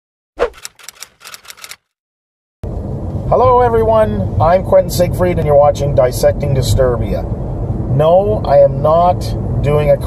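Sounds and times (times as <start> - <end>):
irregular run of clicks: 0.4 - 1.9.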